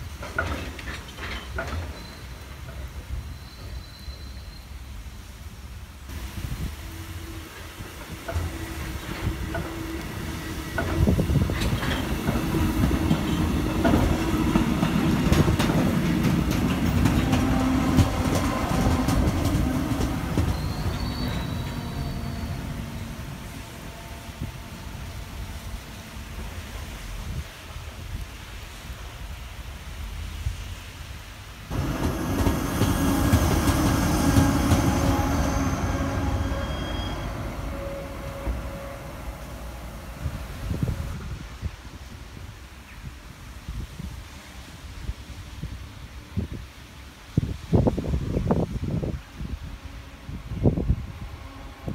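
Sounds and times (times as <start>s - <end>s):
train wagons rumbling past: 0.0s - 5.5s, 6.1s - 30.4s, 31.6s - 42.8s
wheel clicks over rail joints: 0.1s - 2.1s
high wheel squeal: 20.0s - 23.2s, 31.8s - 39.5s
locomotive diesel engine: 31.7s - 41.1s.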